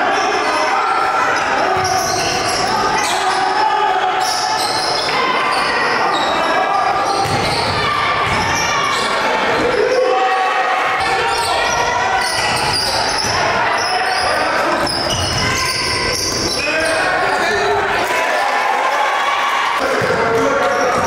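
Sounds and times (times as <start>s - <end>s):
echoing voices: 0.0s - 21.0s.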